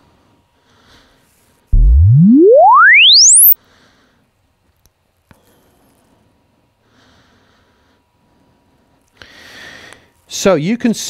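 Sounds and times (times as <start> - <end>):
rising sine sweep tone: 1.8 - 3.6.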